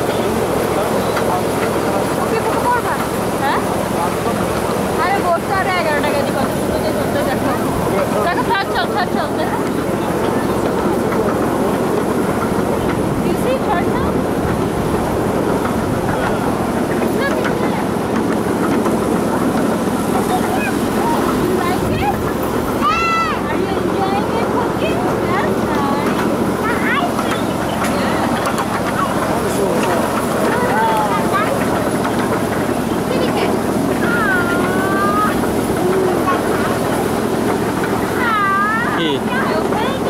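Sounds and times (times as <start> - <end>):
steady rushing noise: 0.0 - 40.0.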